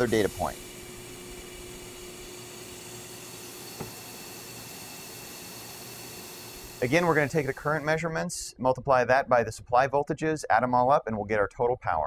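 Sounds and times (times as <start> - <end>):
rushing hiss of air: 2.8 - 7.9.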